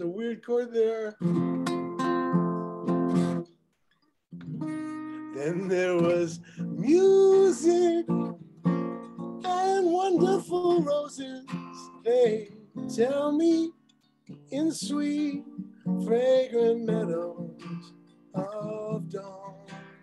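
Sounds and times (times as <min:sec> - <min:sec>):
acoustic guitar strummed: 0:01.1 - 0:03.5, 0:04.3 - 0:20.0
person singing wavering melody: 0:09.4 - 0:13.7, 0:14.5 - 0:20.0.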